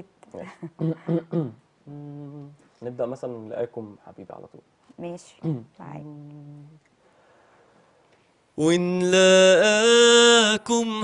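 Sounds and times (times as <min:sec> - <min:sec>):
man humming a low note: 0:00.8 - 0:02.6
man speaking: 0:02.8 - 0:04.7.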